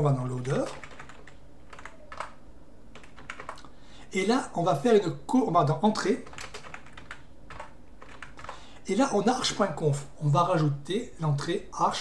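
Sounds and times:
computer keyboard keystrokes: 0.4 - 2.4, 3.0 - 3.7, 6.2 - 8.6.

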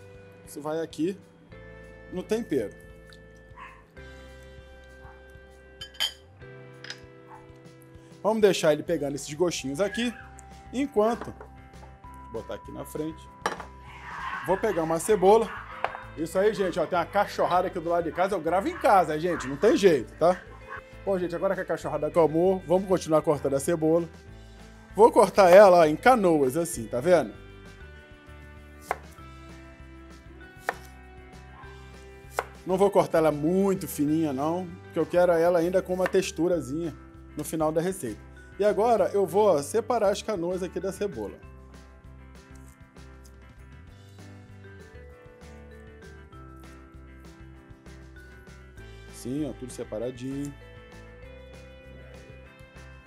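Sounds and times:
background music with held chords: 0.0 - 53.0
glass bowl clink: 5.8 - 7.1, 13.4 - 13.8
knife striking cutting board: 28.8 - 29.2, 30.6 - 30.9.

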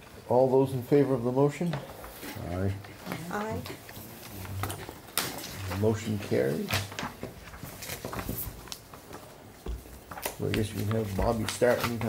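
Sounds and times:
papers rustling and shuffling: 0.0 - 12.0.

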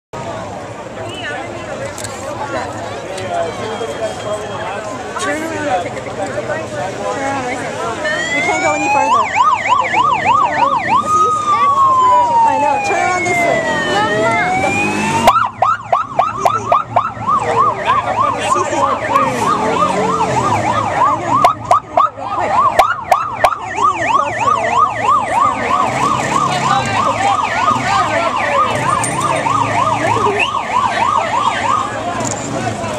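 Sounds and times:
police siren slow wail: 7.9 - 32.3
police siren fast yelp: 8.0 - 32.1.

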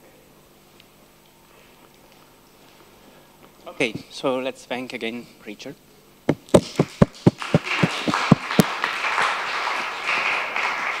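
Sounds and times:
audience applauding: 6.5 - 11.0.

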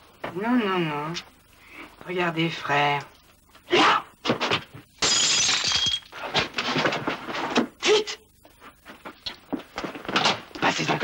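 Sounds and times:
brittle object shattering: 5.0 - 6.2.

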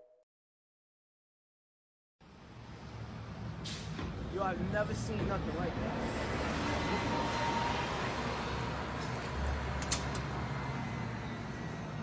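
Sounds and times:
bus driving by: 2.2 - 12.0
city street traffic: 2.2 - 12.0.

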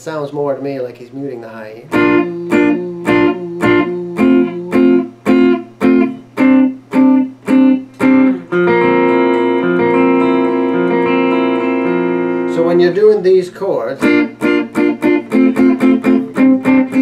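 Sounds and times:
electric guitar strumming chords: 1.9 - 17.0.

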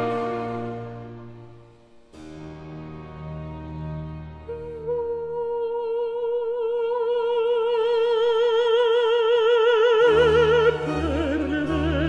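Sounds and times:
low instrumental accompaniment: 0.0 - 5.2.

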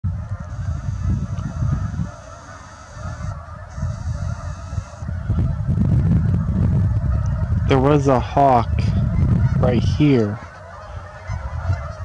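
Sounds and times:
wind rumble on microphone: 0.0 - 12.0
geese honking: 0.1 - 12.0.

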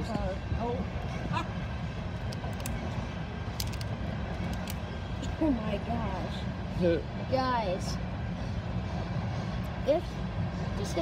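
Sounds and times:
steady low rumble: 0.0 - 11.0
small clicks and crackles of broken parts: 3.6 - 4.8.

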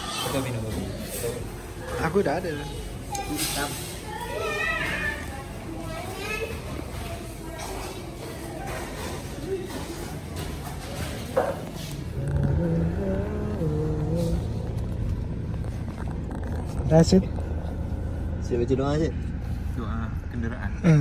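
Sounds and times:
indistinct voices: 0.0 - 21.0.

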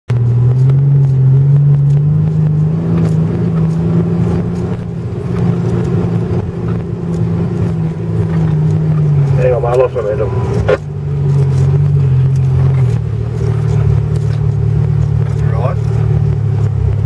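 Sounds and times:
car engine running under load: 0.1 - 17.0.

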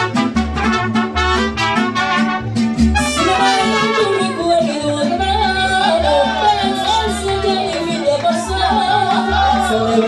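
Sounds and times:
mariachi band playing: 0.0 - 10.0
person singing: 3.2 - 10.0.

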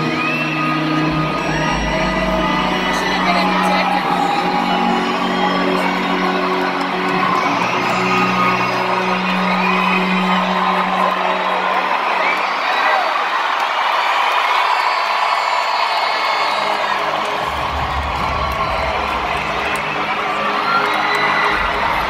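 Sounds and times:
crowd screaming and cheering: 0.0 - 22.0.

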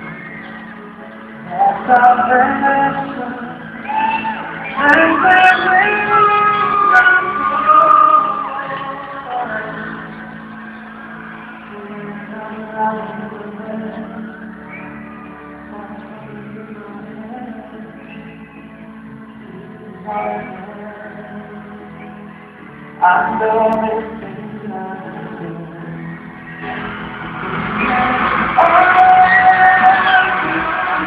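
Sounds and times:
pop ballad over sound system: 0.0 - 31.0
live band playing: 26.4 - 31.0.

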